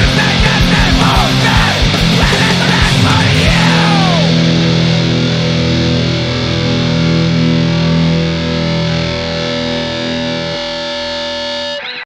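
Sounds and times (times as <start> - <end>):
punk band distorted guitar chord: 0.0 - 12.0.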